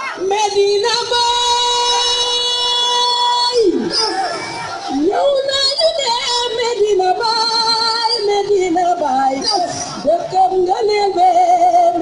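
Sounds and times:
woman singing: 0.2s - 3.8s, 5.0s - 9.4s, 10.0s - 12.0s.

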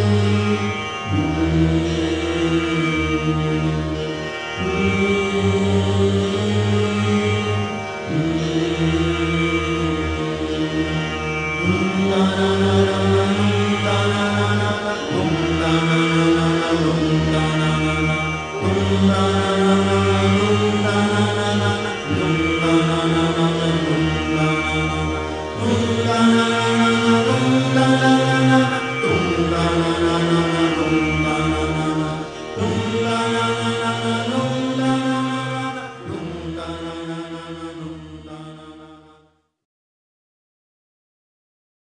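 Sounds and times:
music: 0.0s - 39.7s
chanted mantra: 4.6s - 11.0s, 11.6s - 39.2s.

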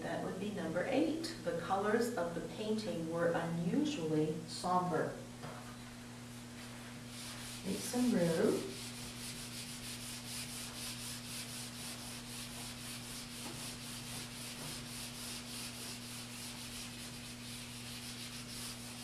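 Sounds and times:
eraser wiping whiteboard: 6.6s - 19.0s.

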